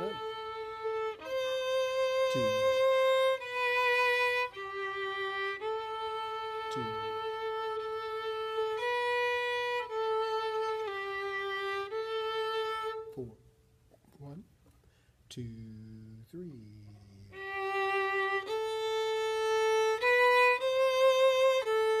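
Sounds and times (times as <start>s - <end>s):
man counting aloud: 0.0s - 0.3s, 2.3s - 2.7s, 6.7s - 7.1s, 13.1s - 13.4s, 14.2s - 14.5s, 15.3s - 17.4s
solo violin melody: 0.0s - 13.4s, 17.2s - 22.0s.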